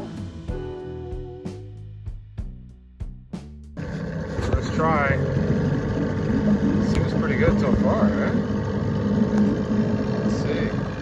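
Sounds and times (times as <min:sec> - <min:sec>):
outboard motor running: 0:03.8 - 0:11.0.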